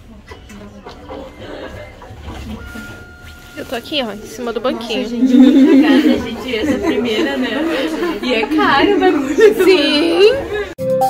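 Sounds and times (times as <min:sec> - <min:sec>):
steady high tone: 0:05.0 - 0:06.4.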